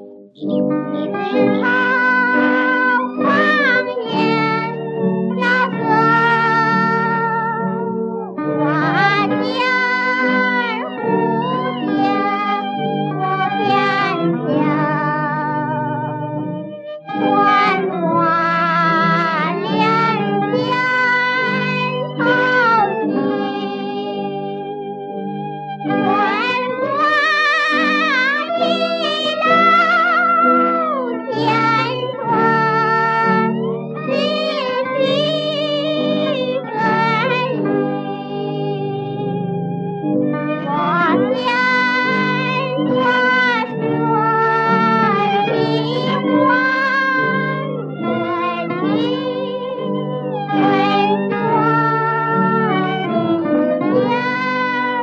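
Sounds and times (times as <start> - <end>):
instrumental accompaniment: 0.0 - 55.0
woman singing soprano with vibrato: 0.5 - 7.7, 8.6 - 16.0, 17.1 - 24.6, 25.9 - 39.4, 40.6 - 55.0.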